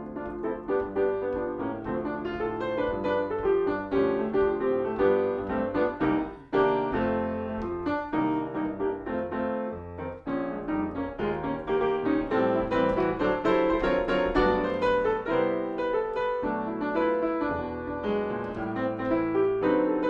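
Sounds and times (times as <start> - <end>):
solo grand piano jazz piece: 0.0 - 20.0.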